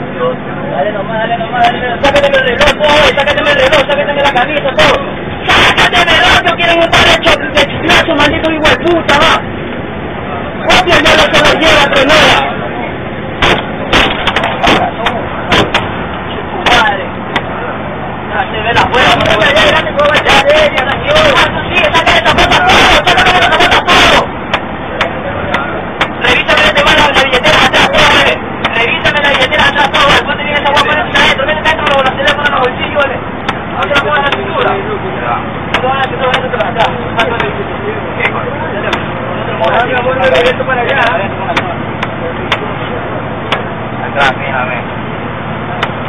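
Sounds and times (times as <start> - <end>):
bus rumbling: 0.0 - 46.0
raised indistinct voices: 0.0 - 46.0
sharp knocks and bumps: 13.4 - 16.0.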